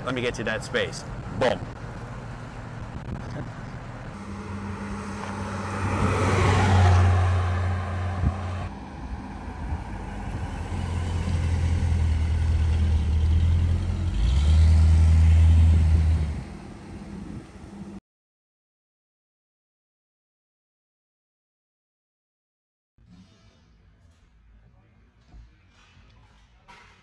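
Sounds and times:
car engine driving past: 0:02.0 - 0:18.0.

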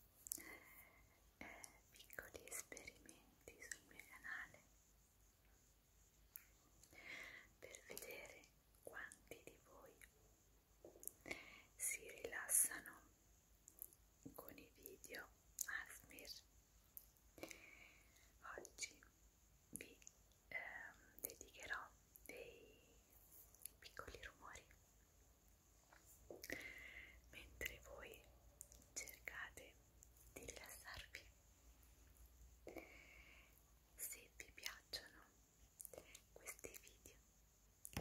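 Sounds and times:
woman whispering: 0:00.3 - 0:04.7, 0:06.9 - 0:10.2, 0:11.0 - 0:13.1, 0:14.3 - 0:16.5, 0:17.4 - 0:19.1, 0:19.7 - 0:23.0, 0:23.6 - 0:24.8, 0:26.4 - 0:31.3, 0:34.0 - 0:37.2.

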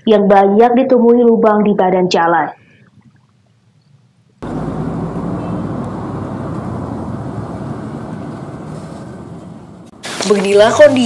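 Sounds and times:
diesel truck rumbling: 0:04.4 - 0:11.0.

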